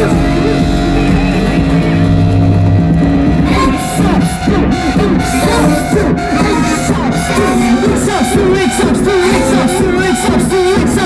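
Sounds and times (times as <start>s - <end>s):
amplified rock band music: 0.0s - 11.0s.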